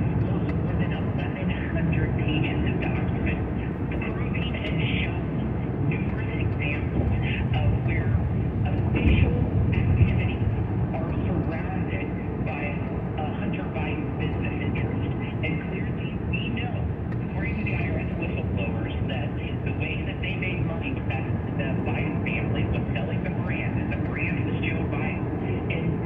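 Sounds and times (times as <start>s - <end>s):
muffled talk from car radio: 0.0s - 26.0s.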